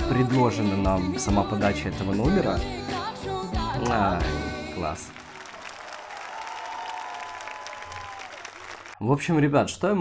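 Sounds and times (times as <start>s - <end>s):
studio audience applauding: 4.8s - 9.0s.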